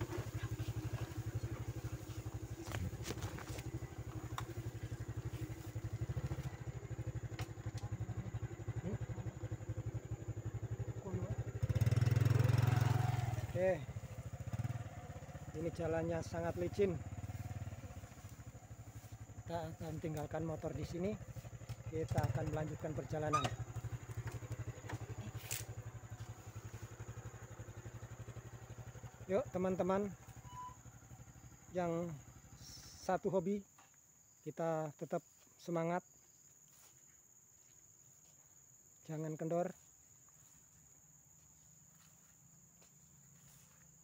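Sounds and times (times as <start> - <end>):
small motorcycle engine running: 0.0 - 33.0, 42.9 - 43.9
high-pitched insect drone: 0.0 - 44.0.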